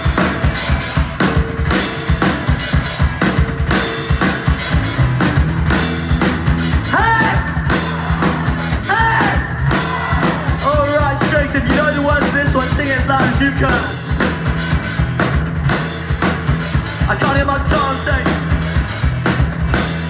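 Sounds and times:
drum kit beat: 0.0 - 20.0
live rock band playing: 0.0 - 20.0.

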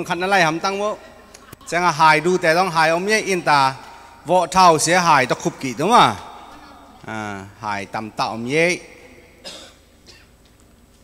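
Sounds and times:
person coughing: 9.4 - 10.4.

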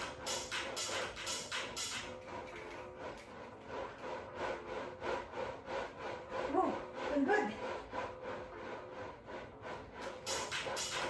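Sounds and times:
faint music: 0.0 - 11.0
twisting disc rasping rub: 0.0 - 11.0.

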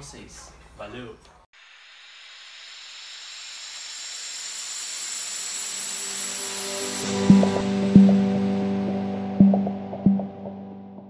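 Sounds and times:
hissing whoosh: 1.6 - 7.9
sharp hit with low tone: 6.7 - 11.0.

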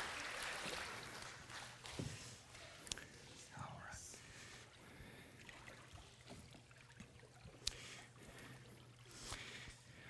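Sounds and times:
faint water movement: 0.0 - 10.0.

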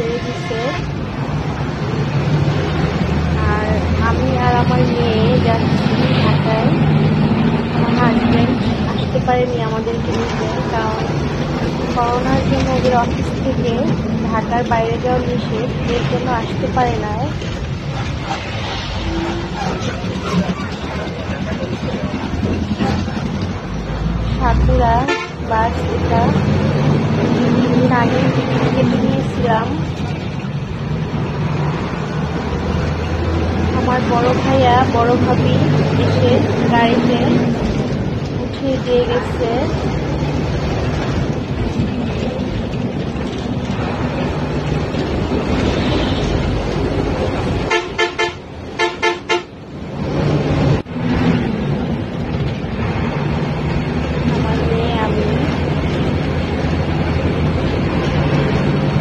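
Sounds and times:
bus engine rumble: 0.0 - 59.0
vehicle horn honking: 25.1 - 25.4, 47.7 - 49.5.

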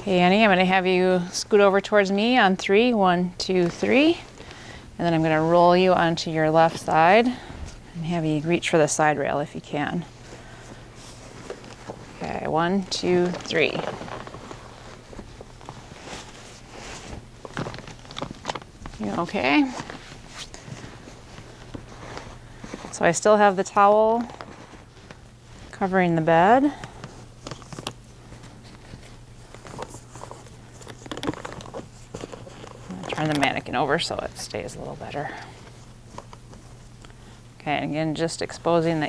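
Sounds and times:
bed sheets and gown rustling: 0.0 - 39.0
steady low hum: 0.0 - 39.0.

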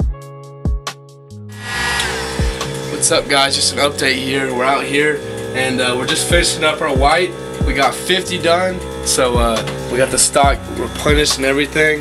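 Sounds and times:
music with low drum thumps: 1.6 - 12.0.

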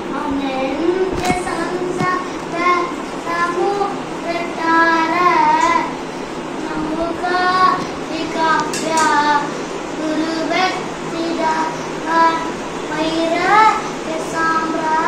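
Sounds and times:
child singing: 0.1 - 6.0, 6.6 - 15.0.

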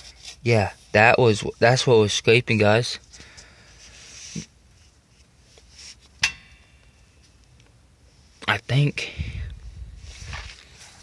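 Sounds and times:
sharp metallic clink: 6.2 - 7.2.

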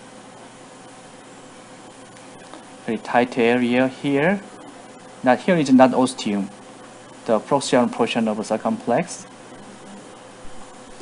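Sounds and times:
faint background hum: 0.0 - 11.0
thin constant tone: 0.0 - 11.0
man speaking: 5.2 - 6.6.

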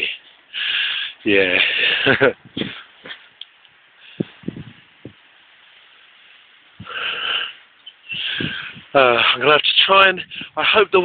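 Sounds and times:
faint steady outdoor hiss: 0.0 - 11.0
dull thumps of handheld camera: 2.4 - 3.3, 4.2 - 5.3.

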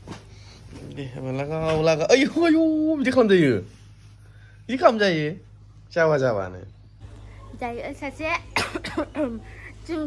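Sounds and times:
woman coughing: 8.5 - 9.5.

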